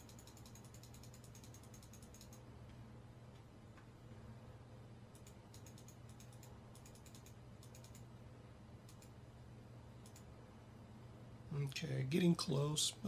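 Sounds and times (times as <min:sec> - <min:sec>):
computer keyboard typing: 0:00.0 - 0:02.5, 0:05.2 - 0:08.1, 0:08.9 - 0:09.2, 0:10.0 - 0:10.3
steady low hum: 0:00.0 - 0:13.0.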